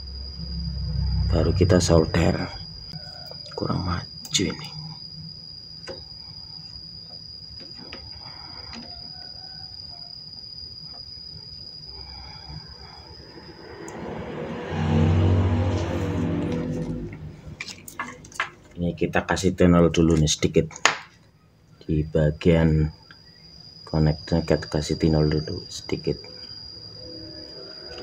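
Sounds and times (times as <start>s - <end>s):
passing vehicle engine: 0.0s - 3.0s, 13.0s - 18.7s
steady high whine: 0.0s - 28.0s.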